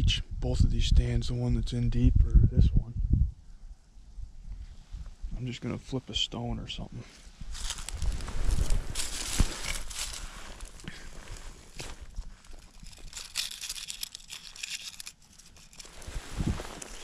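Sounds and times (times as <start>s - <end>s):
dry leaves crackling and rustling: 7.4s - 17.0s.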